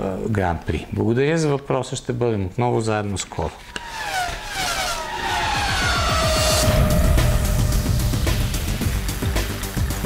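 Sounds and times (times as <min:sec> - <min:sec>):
race car engine sweeping past: 0:03.7 - 0:08.9
theme jingle with rhythmic beat: 0:05.4 - 0:10.0.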